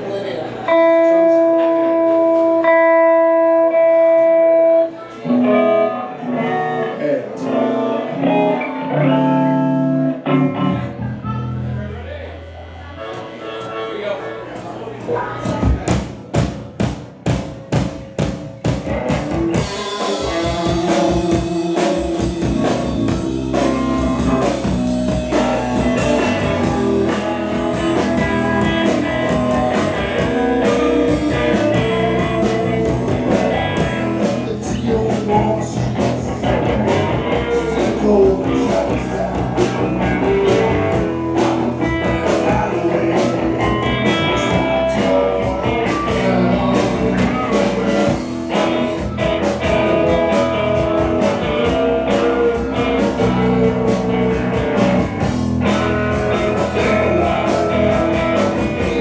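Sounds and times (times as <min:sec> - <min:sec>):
electric guitars: 0:00.6 - 0:13.9, 0:17.8 - 0:59.0
live rock band playing: 0:00.6 - 0:59.0
drums beating steady rhythm: 0:14.5 - 0:59.0.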